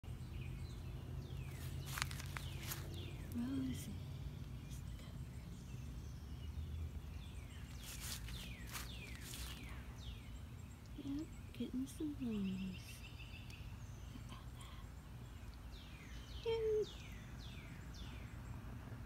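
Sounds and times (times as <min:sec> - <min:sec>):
birds calling high-pitched: 0:00.0 - 0:18.7
low background rumble: 0:00.1 - 0:19.0.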